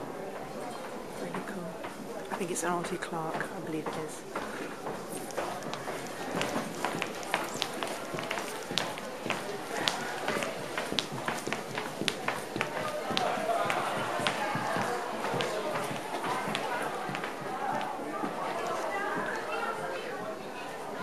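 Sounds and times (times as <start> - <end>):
murmur of voices: 0.0 - 21.0
shoes clicking on wooden floor: 0.4 - 19.4.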